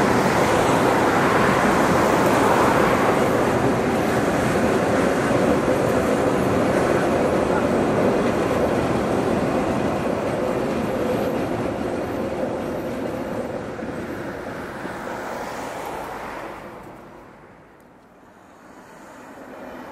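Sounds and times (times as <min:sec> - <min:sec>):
train wheels rumbling on rails: 0:00.0 - 0:17.2.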